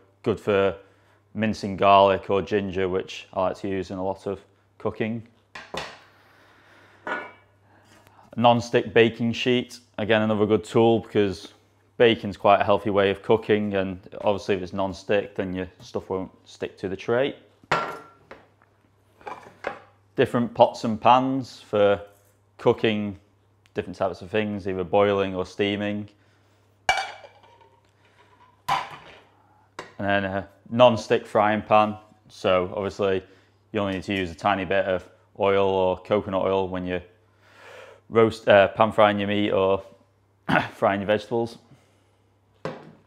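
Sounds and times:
kitchen utensils clattering: 26.9s - 29.2s.

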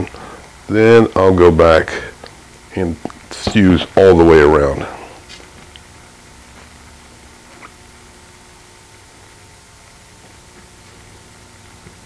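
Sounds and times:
torch flame hissing: 1.8s - 8.7s.

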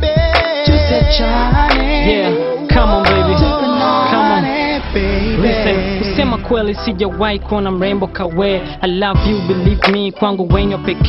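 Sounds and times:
r and b song with deep bass: 0.0s - 11.0s.

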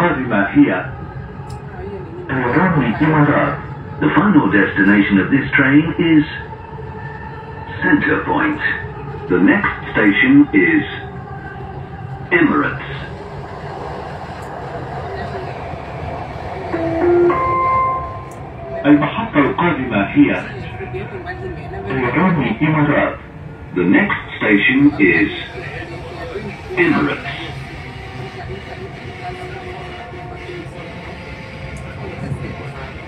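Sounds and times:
train rumble from inside car: 0.0s - 33.0s
electronic tones rising in pitch: 16.7s - 18.4s.

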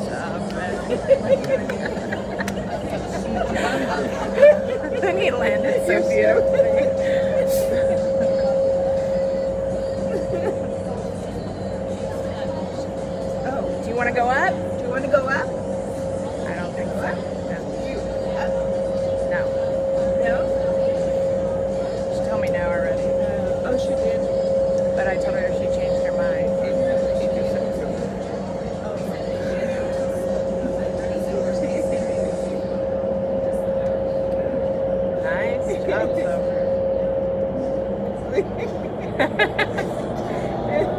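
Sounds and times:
fan hum: 0.0s - 40.9s.

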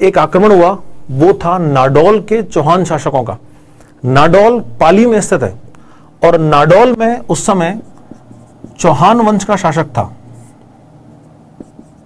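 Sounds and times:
marker scratching on whiteboard: 7.6s - 9.6s, 10.2s - 12.0s
marker tip tapping: 8.0s - 8.8s, 11.6s - 12.0s.

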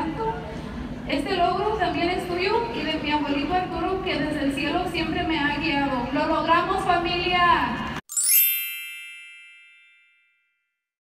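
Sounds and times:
bright chime ringing: 8.1s - 10.7s.

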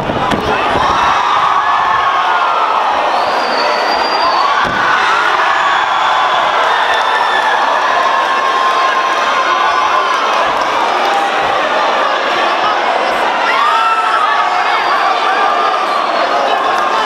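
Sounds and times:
crowd cheering and shouting: 0.0s - 17.0s.

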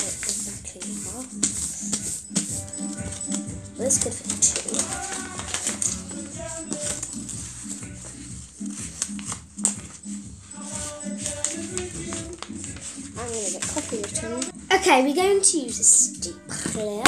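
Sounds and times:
paper rustling and crackling: 0.0s - 14.5s
music playing: 0.0s - 17.0s.

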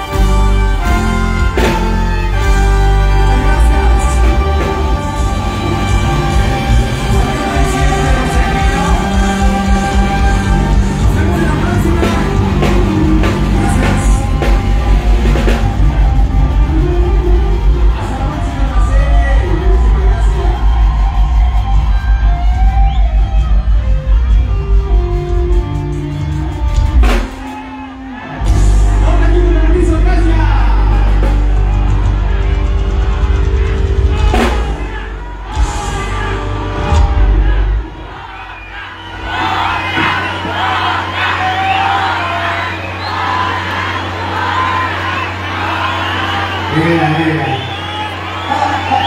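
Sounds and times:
crowd cheering and shouting: 0.0s - 49.0s
heavy pulsing bass: 0.0s - 49.0s
loud live band music: 0.0s - 49.0s.

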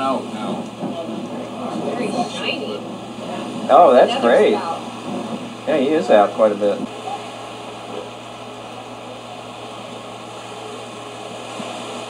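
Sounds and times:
low hum: 0.0s - 12.0s
steady background hiss: 0.0s - 12.0s.

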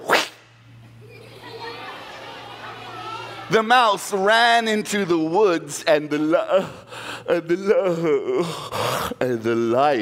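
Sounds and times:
children murmuring: 1.0s - 3.5s.

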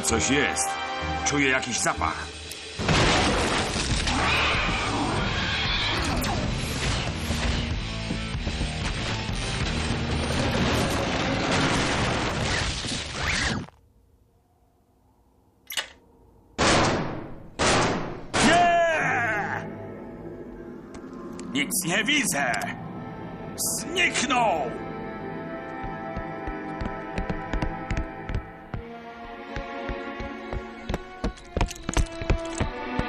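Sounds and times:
crashing and smashing effects: 9.4s - 13.6s.

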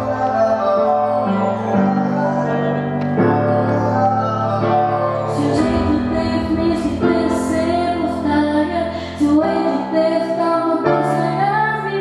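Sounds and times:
amplified instrumental backing: 0.0s - 12.0s
girl singing into microphone: 2.0s - 12.0s.

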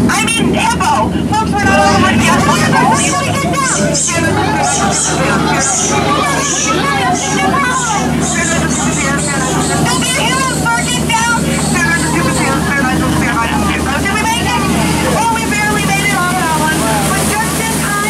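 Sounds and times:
boat motor humming: 0.0s - 18.0s
passenger voices and chatter: 0.0s - 18.0s.

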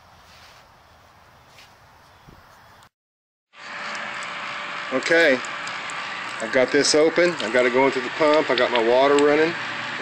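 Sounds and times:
pump running with rushing water: 3.5s - 10.0s.

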